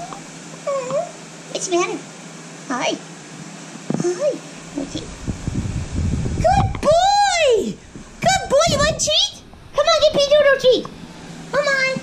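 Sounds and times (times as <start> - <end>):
puppy whining: 0.0 - 1.2
person speaking: 4.0 - 5.2.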